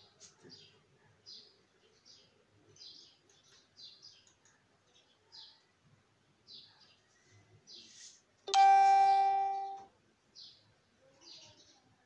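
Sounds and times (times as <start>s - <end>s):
bell-like chime: 8.5s - 9.9s.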